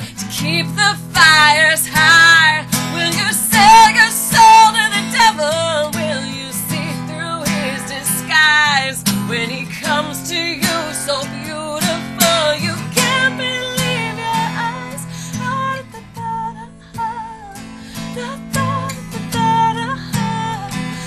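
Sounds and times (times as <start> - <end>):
strummed acoustic guitar: 0.0 - 21.0
woman singing: 0.0 - 21.0.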